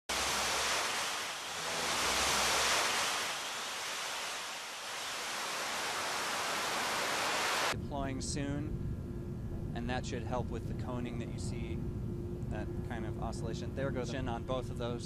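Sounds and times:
rocket engine rushing roar: 0:00.0 - 0:07.8.

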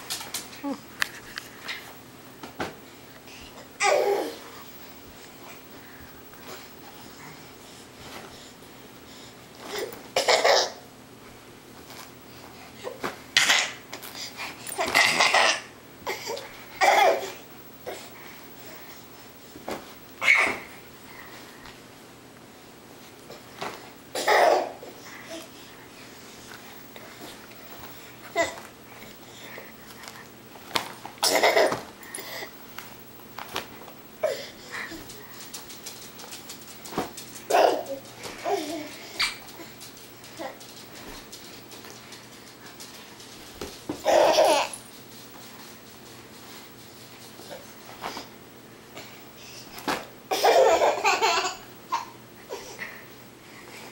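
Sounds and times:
toddler laughing: 0:03.8 - 0:04.4, 0:37.5 - 0:39.4, 0:44.0 - 0:44.8, 0:50.3 - 0:52.8.

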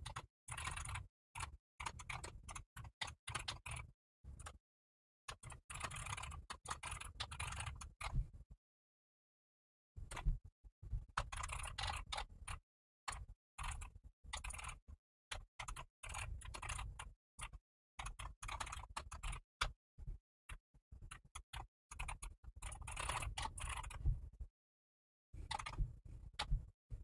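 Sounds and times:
typing on computer keyboard: 0:00.0 - 0:04.6, 0:05.3 - 0:08.2, 0:11.2 - 0:19.7, 0:21.1 - 0:24.0, 0:25.4 - 0:25.8.

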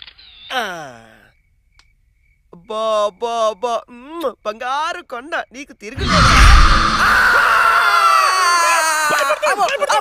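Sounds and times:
person screaming shrilly: 0:06.0 - 0:09.2.

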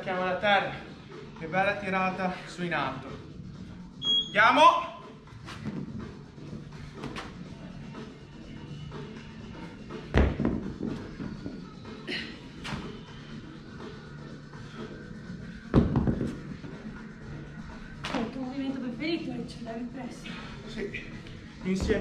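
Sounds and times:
background music with steady beat: 0:00.0 - 0:22.0
dumbbells thudding on rubber floor: 0:10.1 - 0:11.0, 0:15.7 - 0:16.4.

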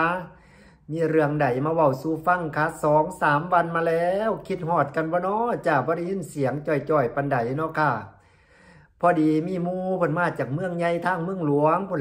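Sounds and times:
man speaking: 0:00.0 - 0:08.2, 0:08.9 - 0:12.0.

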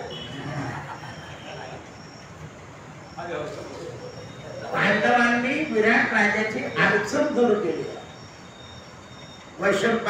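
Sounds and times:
high-pitched whine: 0:00.0 - 0:10.0
man speaking into microphone: 0:03.2 - 0:08.1.

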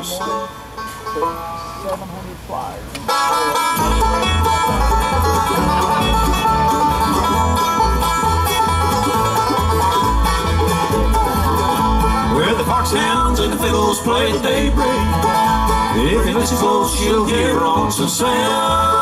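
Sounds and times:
bluegrass band playing: 0:00.0 - 0:19.0.

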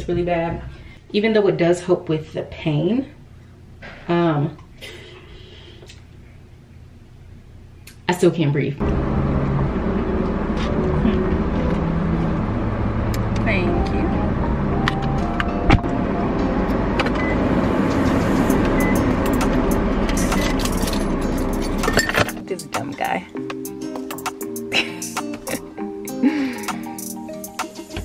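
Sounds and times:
car road rumble: 0:08.8 - 0:22.4
music with singing: 0:21.4 - 0:28.0.

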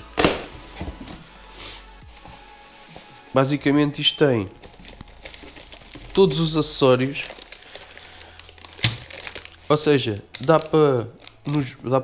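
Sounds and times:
bubble wrap rustling: 0:00.0 - 0:12.0
quiet background music: 0:00.0 - 0:12.0.

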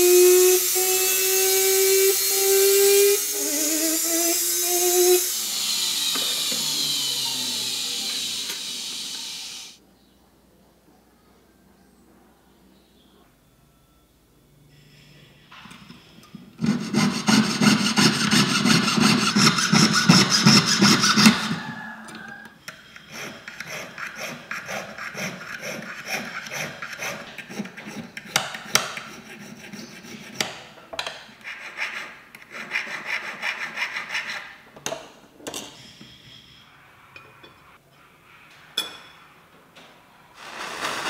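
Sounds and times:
needle file rasping on metal: 0:16.6 - 0:21.5, 0:22.6 - 0:30.6.

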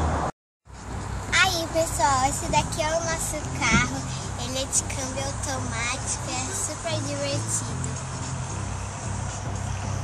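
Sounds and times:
car engine hum: 0:00.0 - 0:10.0
music: 0:00.7 - 0:10.0.

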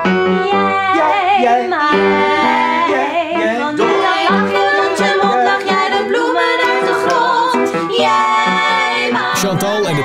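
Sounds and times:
upright piano accompaniment: 0:00.0 - 0:10.0
women singing in harmony: 0:00.0 - 0:10.0.

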